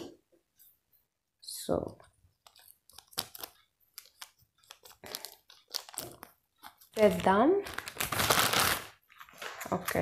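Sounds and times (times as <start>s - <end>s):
plastic crinkling: 2.3s - 10.0s.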